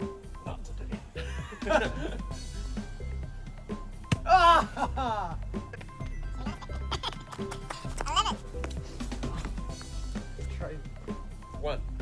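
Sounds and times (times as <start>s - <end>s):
background music with light beat: 0.0s - 12.0s.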